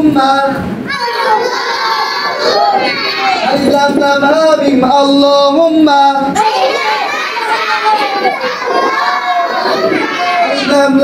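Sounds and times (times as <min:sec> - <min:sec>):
children chanting in chorus: 0:00.9 - 0:03.5, 0:06.4 - 0:11.0.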